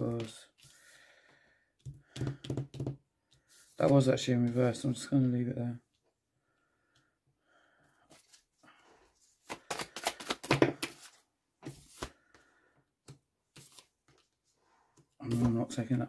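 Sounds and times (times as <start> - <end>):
cards slapping onto wooden table: 9.5 - 12.2.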